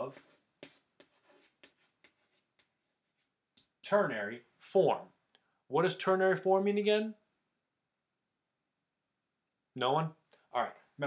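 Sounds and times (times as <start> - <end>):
chalk scratching on chalkboard: 0.0 - 3.7.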